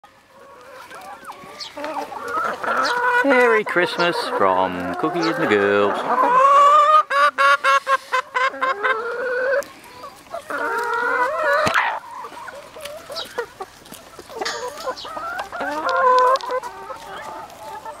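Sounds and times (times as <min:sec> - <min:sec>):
hens clucking: 0:00.1 - 0:18.0.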